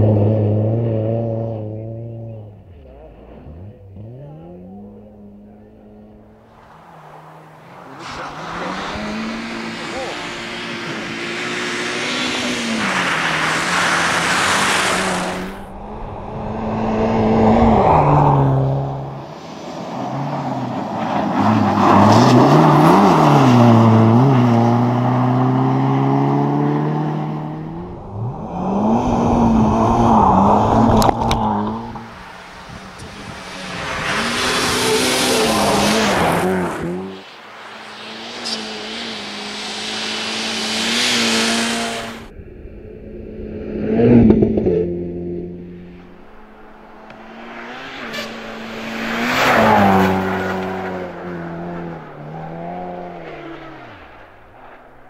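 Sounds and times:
rally car engine revving: 0:00.0 - 0:42.3, 0:43.3 - 0:55.0
rushing noise of passing car: 0:05.5 - 0:55.0.

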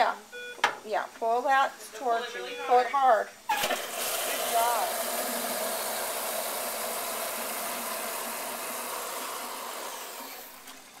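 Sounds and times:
toilet flushing: 0:03.5 - 0:11.0.

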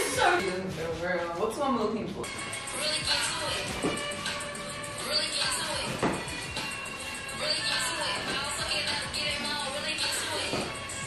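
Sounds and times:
women talking: 0:00.0 - 0:02.2
faint background music: 0:00.0 - 0:11.0.

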